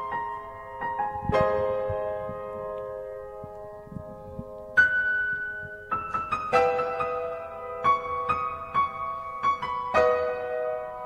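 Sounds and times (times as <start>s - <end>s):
piano chord: 0.0s - 11.0s.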